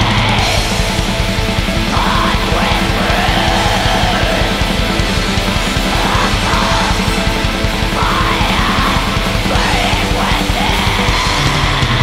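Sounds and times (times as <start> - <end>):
distorted guitars: 0.0 - 12.0
fast drumming: 0.0 - 12.0
harsh screamed vocals: 0.0 - 12.0.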